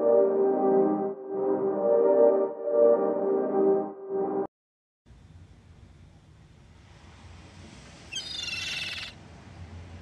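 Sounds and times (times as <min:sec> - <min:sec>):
high-pitched bird-like cry: 0:08.1 - 0:09.2.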